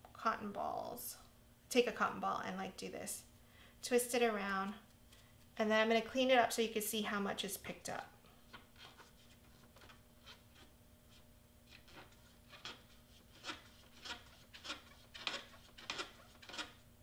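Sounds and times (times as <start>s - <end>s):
cotton swab scratching inside tank: 8.5s - 16.9s.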